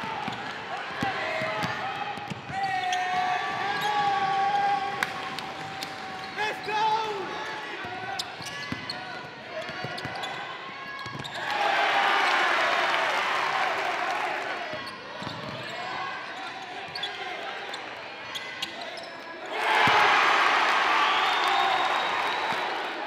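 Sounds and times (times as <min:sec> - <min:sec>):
players and spectators shouting: 0:00.0 - 0:23.0.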